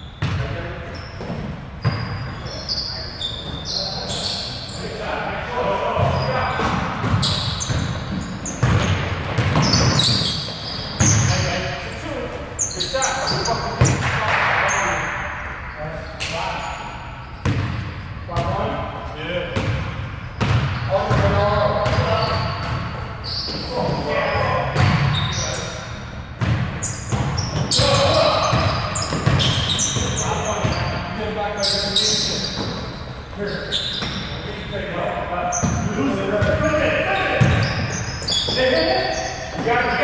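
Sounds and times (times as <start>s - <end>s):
players calling out: 26.8s - 40.0s.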